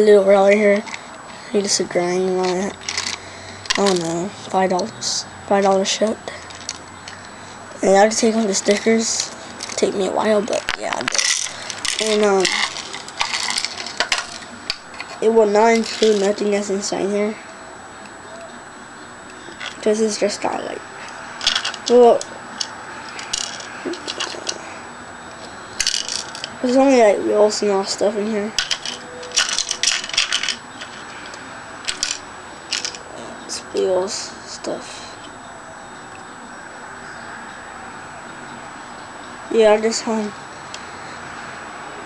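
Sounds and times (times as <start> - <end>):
small parts rattling in box: 2.3 - 4.2, 10.5 - 16.4, 21.4 - 22.2, 23.1 - 24.6, 25.8 - 26.6, 28.6 - 33.0.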